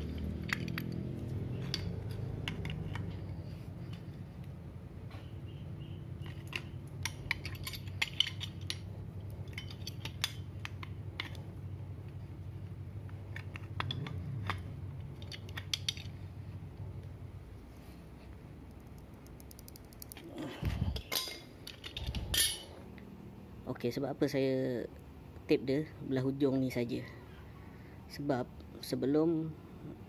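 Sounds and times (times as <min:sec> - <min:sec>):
steady low hum: 0:00.0 - 0:28.8
metallic clicks of wrench and valve: 0:18.7 - 0:20.2.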